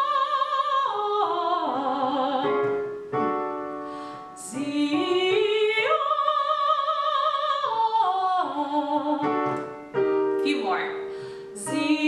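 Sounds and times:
digital piano chords ringing: 0:01.6 - 0:05.8, 0:08.8 - 0:12.0.

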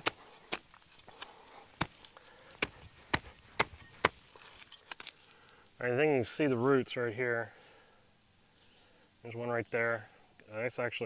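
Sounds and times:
shovel chopping into soil: 0:00.0 - 0:05.2.

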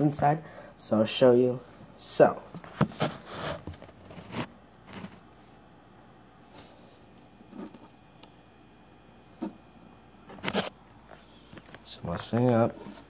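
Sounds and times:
camera handling rubs and bumps: 0:02.6 - 0:05.2, 0:10.3 - 0:11.8.

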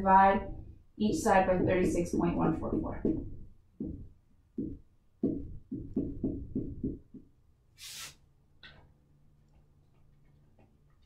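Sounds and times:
marker knocking on whiteboard: 0:01.6 - 0:07.4
marker hiss: 0:07.8 - 0:08.3.

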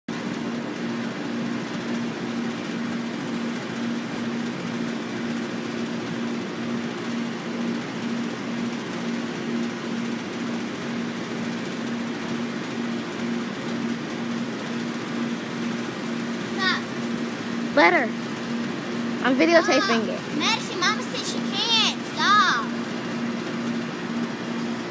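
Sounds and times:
mechanical hum with faint pulse: 0:00.1 - 0:24.9.

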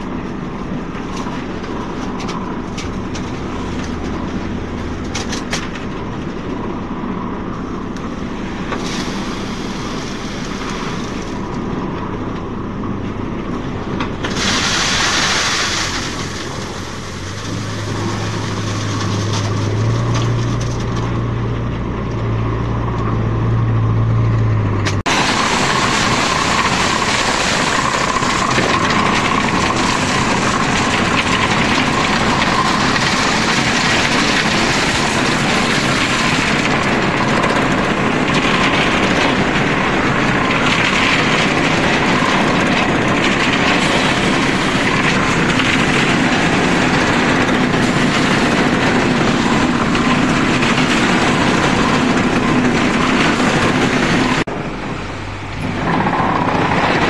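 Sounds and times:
concrete mixer drum churning: 0:00.0 - 0:57.0
machinery humming: 0:00.0 - 0:57.0.

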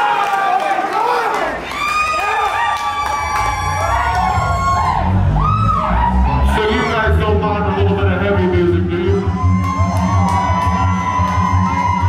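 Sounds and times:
crowd shouting and cheering: 0:00.0 - 0:12.0
rumble of bass and guitar: 0:03.1 - 0:12.0.

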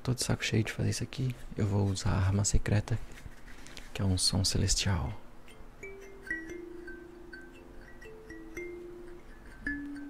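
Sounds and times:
bell-like chime melody: 0:05.8 - 0:10.0.

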